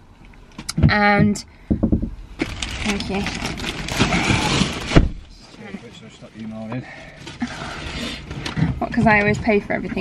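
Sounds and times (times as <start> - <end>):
plastic bag rustling: 2.4 - 8.4.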